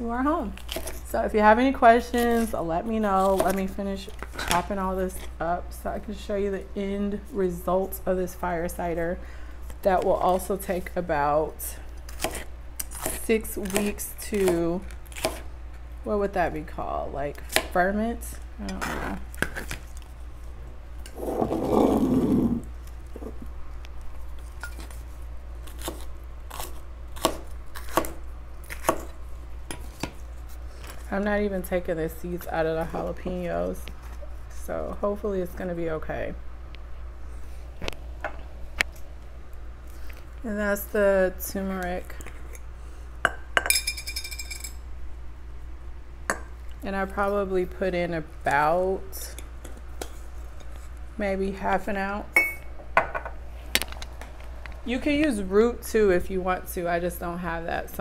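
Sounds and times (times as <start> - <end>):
loud rough noise: 21.2 - 22.7.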